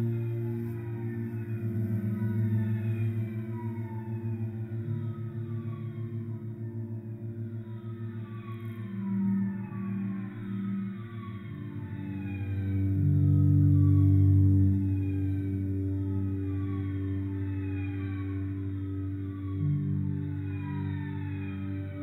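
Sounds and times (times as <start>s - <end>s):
slow ambient cello music: 0.0s - 22.0s.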